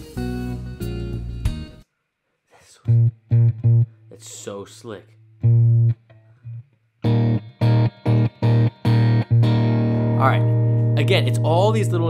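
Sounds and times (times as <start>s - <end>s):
electric guitar clipped chords: 2.9s - 4.0s, 5.4s - 12.0s
person speaking: 4.1s - 5.2s, 10.2s - 12.0s.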